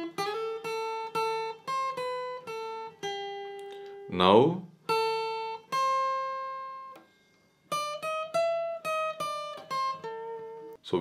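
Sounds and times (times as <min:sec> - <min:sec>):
acoustic guitar lead line: 0:00.0 - 0:11.0.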